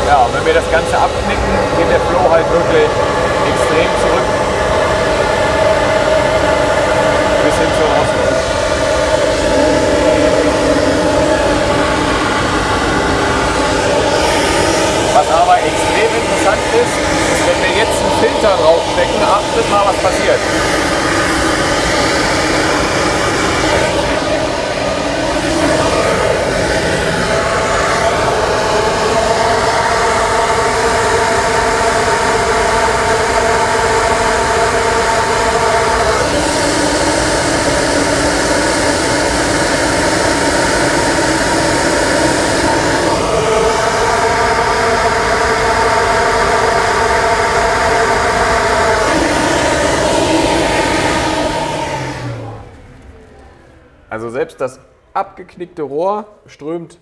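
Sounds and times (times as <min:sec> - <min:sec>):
flow bench air rushing: 0:00.0 - 0:54.5
multi-tone hum: 0:00.0 - 0:56.0.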